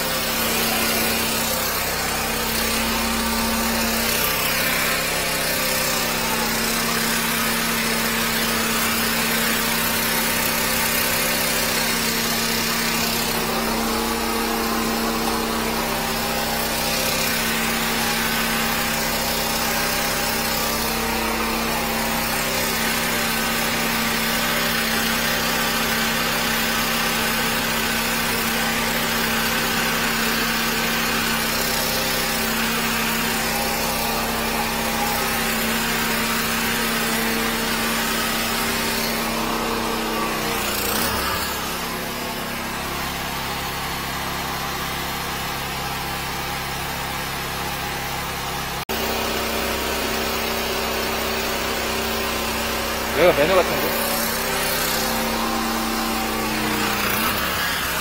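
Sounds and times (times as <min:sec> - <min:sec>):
drain-cleaning machine droning: 0:00.0 - 0:58.0.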